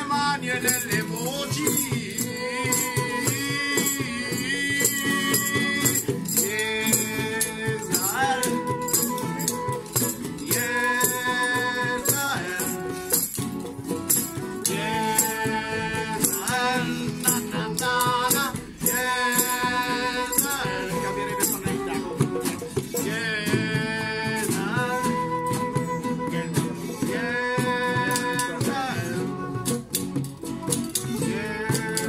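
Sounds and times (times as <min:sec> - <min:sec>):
acoustic guitars: 0:00.0 - 0:32.0
mandolin: 0:00.0 - 0:32.0
flute melody: 0:00.2 - 0:32.0
shaker rattling: 0:00.6 - 0:26.2, 0:27.6 - 0:32.0.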